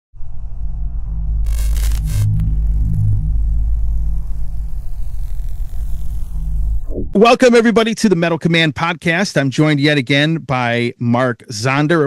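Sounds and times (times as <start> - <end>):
dark droning music: 0.2 - 6.9
short hiss: 1.5 - 7.0.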